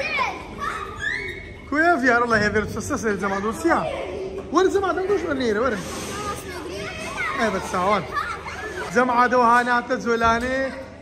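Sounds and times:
children's voices and play: 0.0s - 11.0s
child shouting or laughing: 6.4s - 9.1s.

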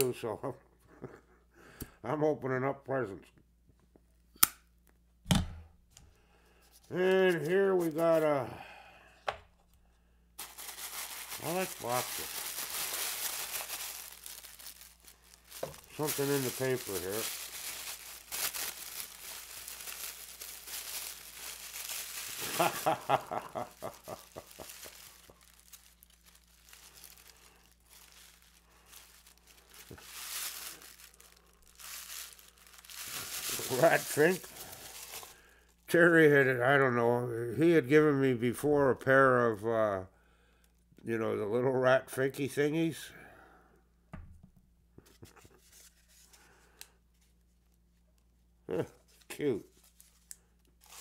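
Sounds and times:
wrapping paper crinkling and tearing: 6.9s - 8.2s, 10.4s - 35.8s, 47.2s - 51.0s.

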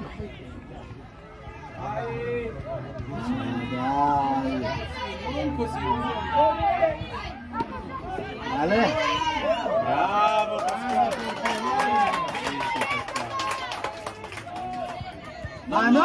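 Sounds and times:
spectators and players calling out: 0.0s - 16.0s.

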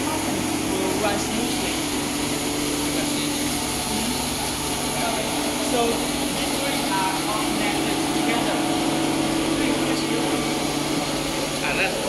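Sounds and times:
machine hum and whir: 0.0s - 12.0s.

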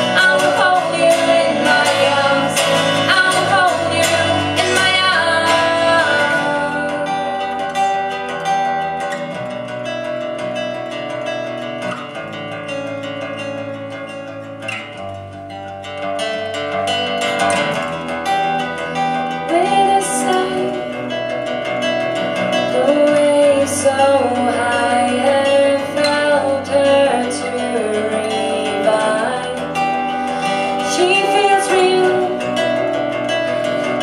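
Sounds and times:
woman singing: 0.0s - 8.2s, 19.2s - 34.0s
acoustic guitars strummed and picked: 0.0s - 34.0s
electric bass guitar: 0.0s - 34.0s.

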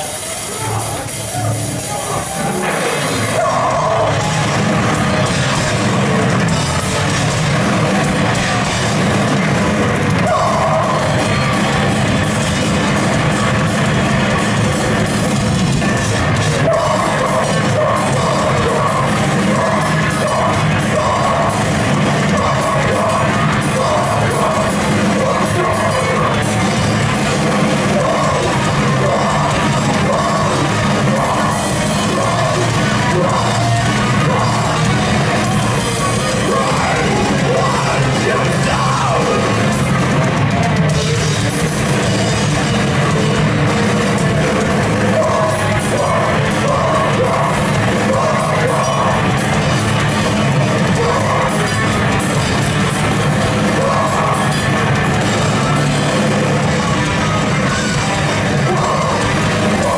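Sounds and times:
shouted vocals: 0.0s - 12.0s, 15.8s - 42.0s, 44.2s - 59.9s
metal band playing live: 0.0s - 59.9s.

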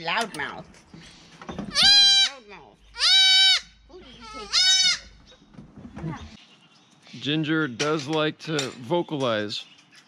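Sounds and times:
goat kid bleating: 1.7s - 5.4s.

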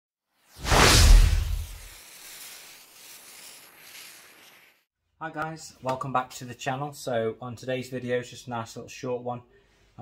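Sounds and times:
whoosh: 0.5s - 2.0s
airy tail: 0.6s - 2.3s.

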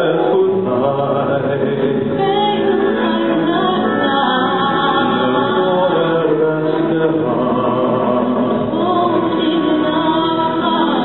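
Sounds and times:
woman and man singing duet: 0.0s - 11.0s.

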